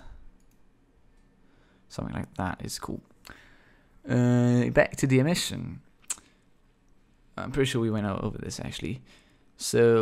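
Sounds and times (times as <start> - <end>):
faint mouse clicks: 0.4 - 1.3.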